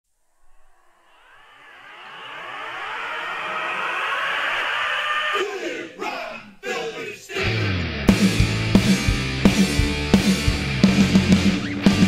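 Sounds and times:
rock song over speakers: 7.4 - 12.0.

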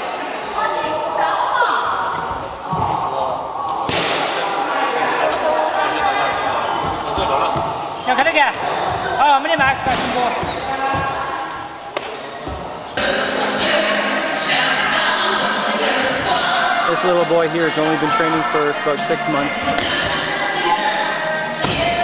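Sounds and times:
voices: 0.0 - 22.0.

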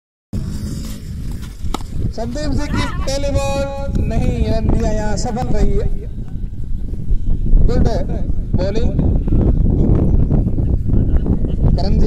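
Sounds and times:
wind noise on microphone: 0.3 - 12.0
cricket bat striking ball: 1.4 - 2.1.

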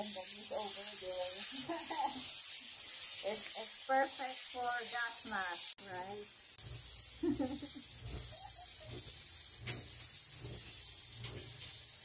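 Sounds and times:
woman speaking: 0.0 - 2.2, 3.2 - 6.3
steady high hiss: 0.0 - 12.0.

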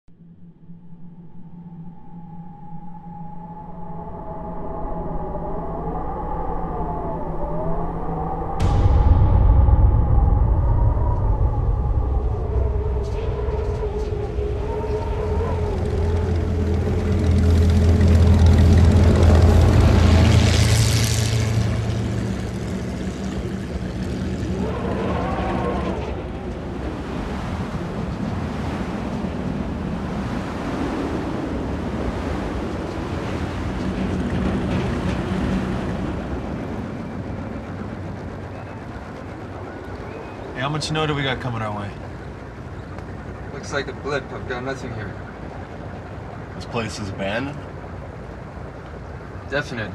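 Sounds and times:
wavering howling tones: 0.1 - 49.5
blowing wind: 0.2 - 49.9
deep vehicle rumble: 8.6 - 49.9.

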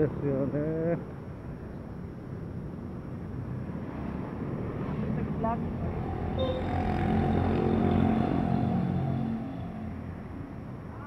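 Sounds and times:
car engines rumbling: 0.0 - 11.0.

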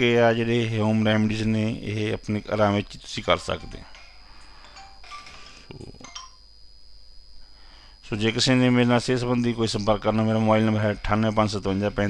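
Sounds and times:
high-pitched whine: 0.0 - 12.0
low background hum: 0.0 - 12.0.

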